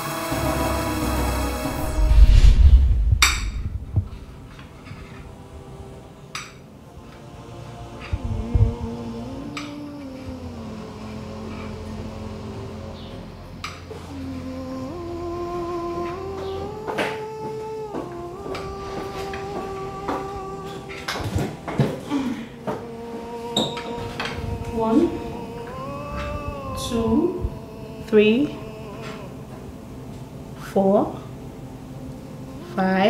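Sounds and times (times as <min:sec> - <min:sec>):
sustained synthesizer chords: 0:00.0 - 0:33.0.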